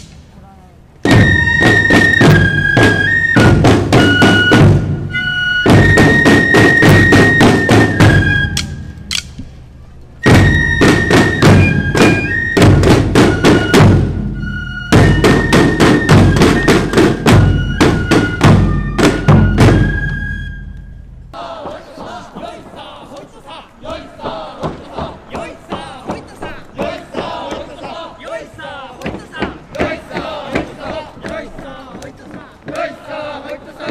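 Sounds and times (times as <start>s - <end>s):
shrill fife melody: 0.0s - 9.3s, 10.2s - 21.3s
snare drum strokes: 1.0s - 9.6s, 10.2s - 20.8s.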